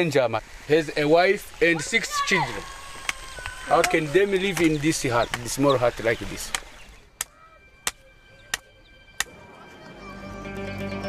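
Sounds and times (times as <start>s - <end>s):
faint sustained music tones: 7.4s - 11.0s.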